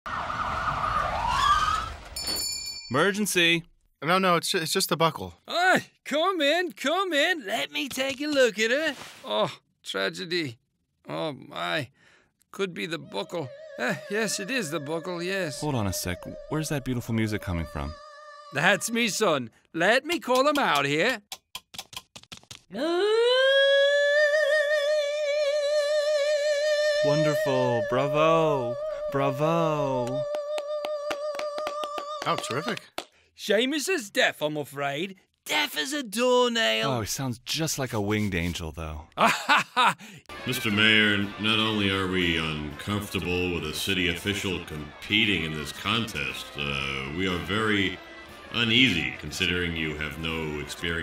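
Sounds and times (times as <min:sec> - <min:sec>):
ambulance siren wailing: 0:00.1 - 0:02.0, 0:40.3 - 0:49.2
boy singing high note: 0:13.0 - 0:19.2, 0:23.0 - 0:31.3.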